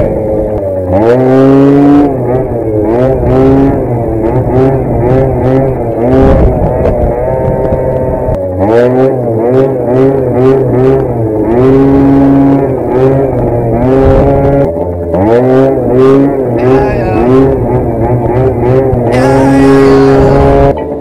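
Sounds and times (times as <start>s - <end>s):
scooter engine revving: 0.0s - 21.0s.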